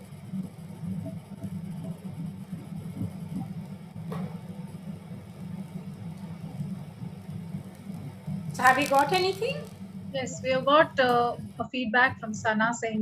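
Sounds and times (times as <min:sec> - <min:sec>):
low background hum: 0:00.0 - 0:13.0.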